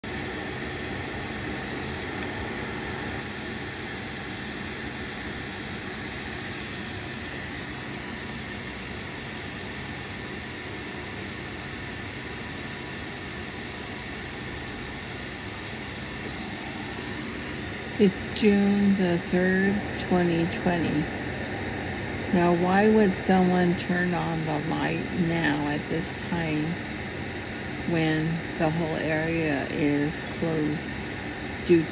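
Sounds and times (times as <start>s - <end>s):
faint high whine: 0.0s - 31.9s
machine hum: 0.0s - 31.9s.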